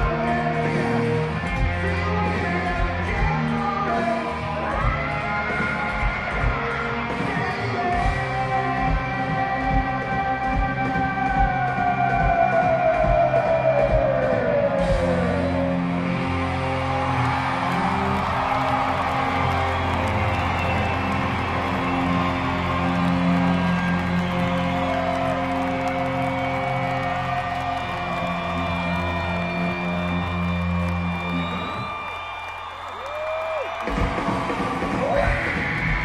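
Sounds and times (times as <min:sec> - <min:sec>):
live rock band droning: 0:00.0 - 0:32.5, 0:33.4 - 0:36.0
crowd cheering and whooping: 0:11.2 - 0:36.0.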